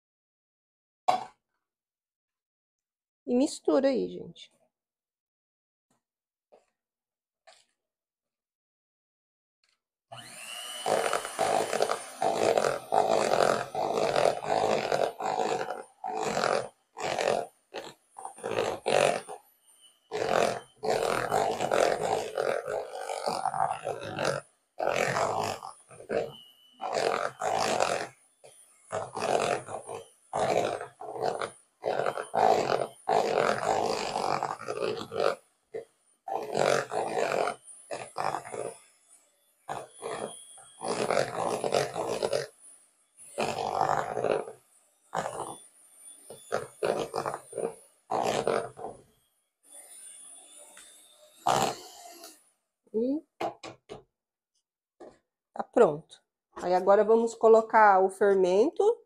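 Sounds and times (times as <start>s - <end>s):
electric hand mixer beating batter: 10.1s - 38.9s, 39.7s - 42.6s, 43.2s - 44.6s, 45.2s - 49.1s, 49.7s - 52.4s.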